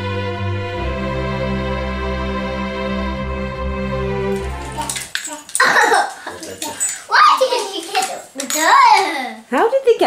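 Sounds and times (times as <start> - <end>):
child speaking excitedly: 6.6 - 9.5.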